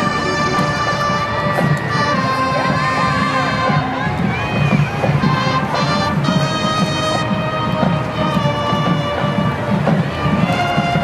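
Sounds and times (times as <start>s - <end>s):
young people cheering and shouting: 0.0s - 6.6s
music playing: 0.0s - 11.0s
people whooping: 0.8s - 6.1s.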